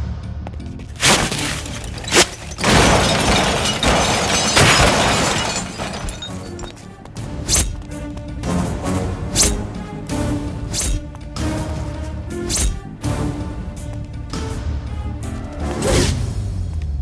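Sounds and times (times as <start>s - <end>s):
car crashing: 0.9s - 6.8s
glass shattering: 1.0s - 6.8s
dramatic film music: 6.0s - 17.0s.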